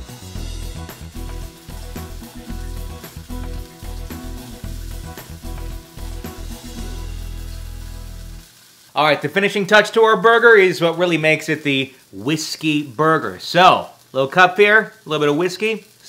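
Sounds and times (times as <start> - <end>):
background music: 0.0 - 8.6
burger patty sizzling: 0.0 - 16.0.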